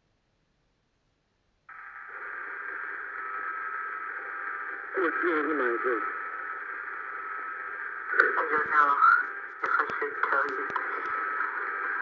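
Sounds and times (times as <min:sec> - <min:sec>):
telephone line hiss: 0:01.7 - 0:12.0.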